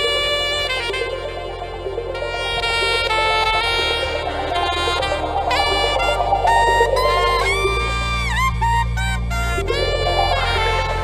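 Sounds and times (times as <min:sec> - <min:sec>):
reedy lead melody: 0:00.0 - 0:11.0
steady low bass: 0:00.0 - 0:11.0.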